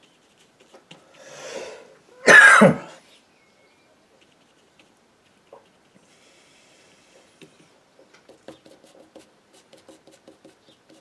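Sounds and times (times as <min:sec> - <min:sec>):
breath in: 0:01.1 - 0:02.0
man coughing: 0:02.2 - 0:03.0.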